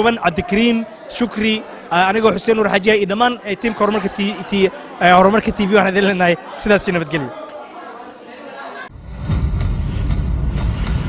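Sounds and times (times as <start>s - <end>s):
deep rumbling sound effect: 8.9s - 11.0s.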